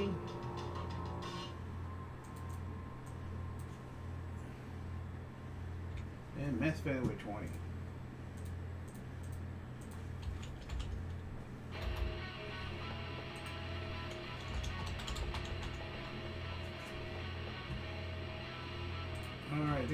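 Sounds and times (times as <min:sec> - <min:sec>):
background music with pulsing bass: 0:00.0 - 0:02.1
sustained music tones: 0:00.0 - 0:05.9, 0:11.7 - 0:19.9
keyboard typing and clicks: 0:02.2 - 0:03.8, 0:08.4 - 0:11.2, 0:11.8 - 0:12.2, 0:13.4 - 0:15.8.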